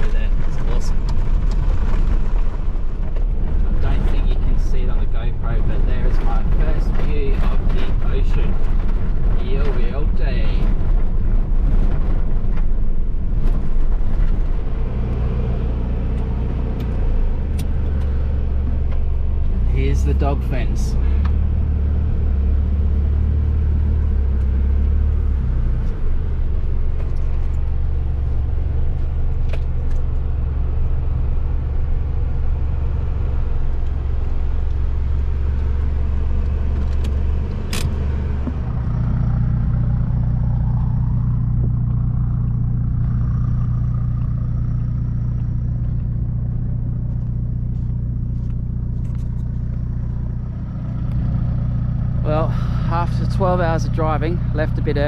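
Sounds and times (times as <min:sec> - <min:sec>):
car engine and tyres on sand: 0:00.0 - 0:55.0.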